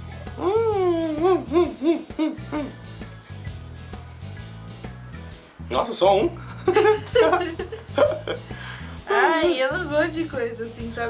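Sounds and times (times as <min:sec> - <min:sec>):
background music: 0:00.0 - 0:11.0
person whimpering: 0:00.3 - 0:02.8.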